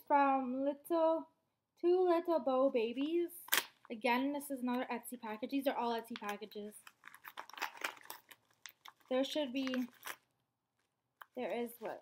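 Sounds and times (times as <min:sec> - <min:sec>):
paper envelope crinkling: 0:06.1 - 0:12.0.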